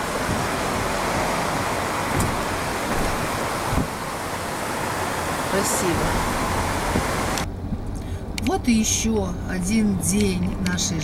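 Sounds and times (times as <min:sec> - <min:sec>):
car interior low hum: 0:00.0 - 0:11.0
car road and wind noise: 0:00.0 - 0:11.0.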